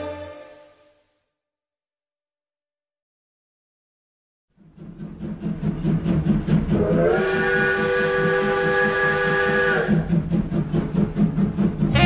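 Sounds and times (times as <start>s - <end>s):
steam train whistle chord: 0.0s - 1.4s, 6.8s - 9.9s.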